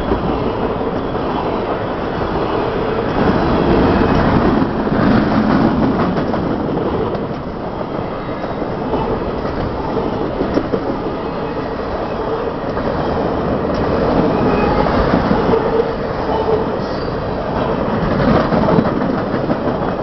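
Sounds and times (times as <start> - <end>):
train wheels rolling on rail: 0.0 - 20.0.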